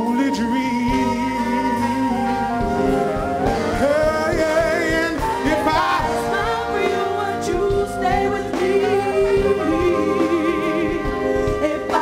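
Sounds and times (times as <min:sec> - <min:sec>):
man singing long sliding notes: 0:00.0 - 0:06.7
electric bass: 0:00.0 - 0:12.0.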